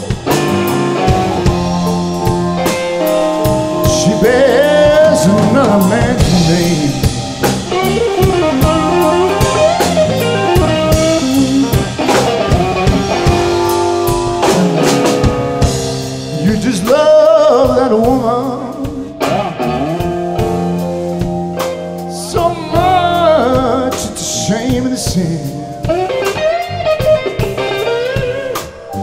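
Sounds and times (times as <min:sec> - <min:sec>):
bass guitar: 0:00.0 - 0:29.0
drum kit: 0:00.0 - 0:29.0
electric guitar lead: 0:00.0 - 0:29.0
organ: 0:00.0 - 0:29.0.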